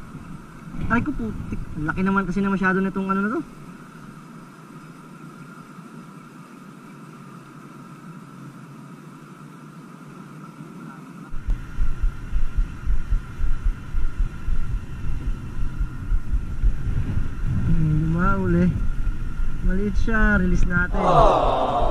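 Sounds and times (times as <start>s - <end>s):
wind buffeting microphone: 0.0s - 2.9s, 11.3s - 21.9s
faint steady hum: 0.0s - 21.9s.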